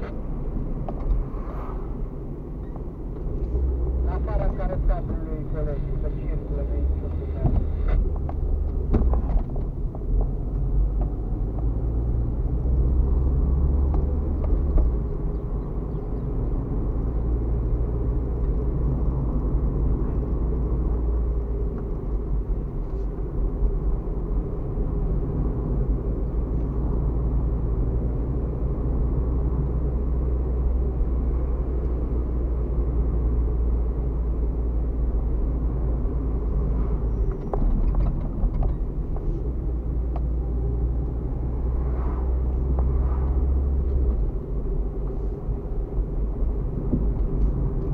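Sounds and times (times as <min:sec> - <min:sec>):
car engine and tyre noise: 0:00.0 - 0:47.9.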